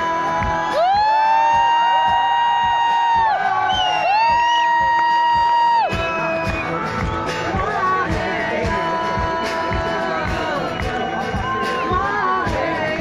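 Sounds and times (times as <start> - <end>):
acoustic guitar: 0.0 - 13.0
steady beat: 0.0 - 13.0.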